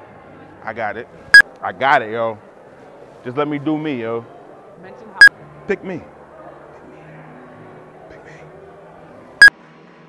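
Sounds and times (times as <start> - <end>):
faint background voices: 0.0 - 9.5.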